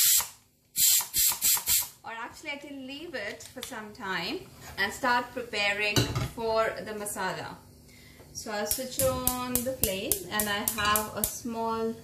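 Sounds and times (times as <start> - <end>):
quick spurts of steam: 0.0 - 1.9
steam hissing from valve: 0.0 - 1.9.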